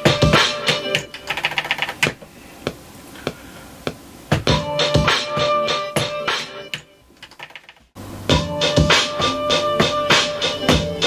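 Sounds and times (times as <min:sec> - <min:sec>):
fingers clicking sampler pads: 0:00.5 - 0:04.6.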